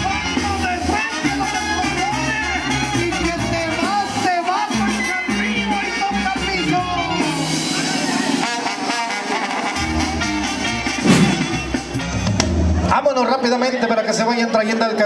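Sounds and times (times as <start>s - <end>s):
brass band music: 8.5s - 11.7s.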